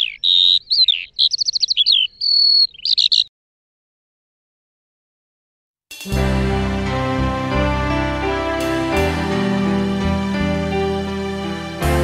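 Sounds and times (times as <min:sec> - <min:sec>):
songbird singing: 0:00.0 - 0:03.3.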